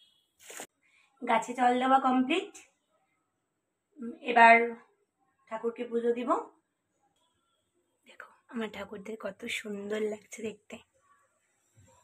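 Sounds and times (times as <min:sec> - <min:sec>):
woman speaking: 0:01.2 - 0:02.7, 0:04.0 - 0:04.8, 0:05.5 - 0:06.6, 0:08.1 - 0:10.8.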